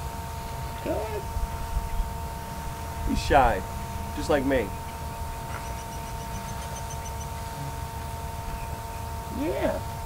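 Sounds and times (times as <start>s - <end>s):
thin electrical whine: 0.0s - 10.0s.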